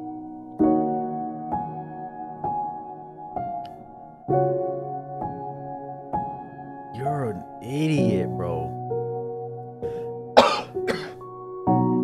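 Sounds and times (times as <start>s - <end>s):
soft background music: 0.0s - 12.0s
man clearing his throat: 10.4s - 11.2s.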